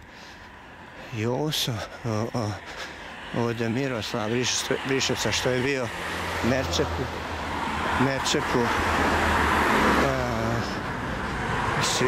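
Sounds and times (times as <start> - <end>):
car passing on asphalt: 0.0 - 12.0.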